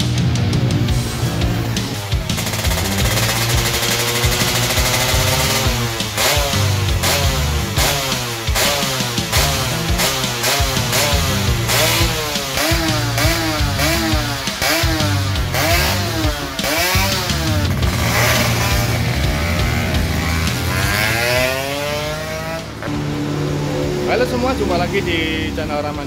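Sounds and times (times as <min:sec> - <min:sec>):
two-stroke engine revving: 0:00.0 - 0:26.0.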